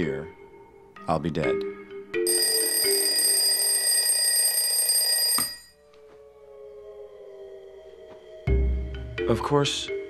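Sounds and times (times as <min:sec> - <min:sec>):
alarm clock bell ringing: 0:02.3 - 0:05.7.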